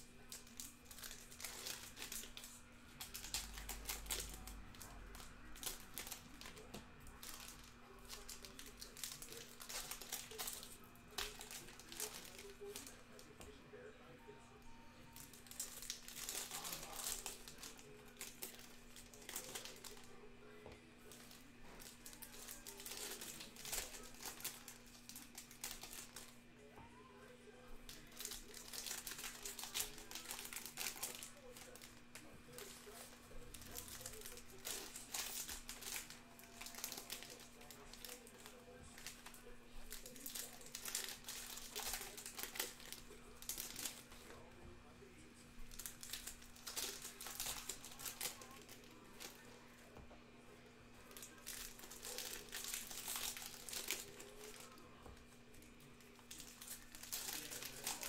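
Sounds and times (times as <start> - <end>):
card pack wrappers crinkling and tearing: 0.0 - 13.6, 15.1 - 26.5, 27.8 - 44.6, 45.5 - 49.9, 51.0 - 58.0.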